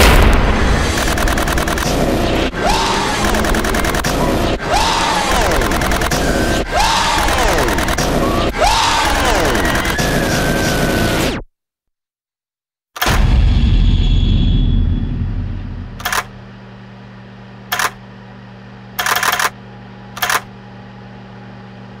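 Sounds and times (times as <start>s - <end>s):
loud low boom: 0.0s - 3.5s, 13.1s - 16.5s
steady low hum: 0.0s - 10.6s, 13.1s - 22.0s
sharp crackling bursts: 0.0s - 11.3s.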